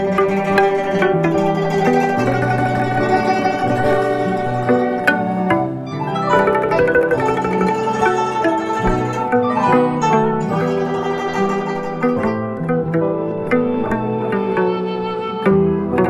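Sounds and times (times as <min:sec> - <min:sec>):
plucked zither melody: 0:00.0 - 0:16.0.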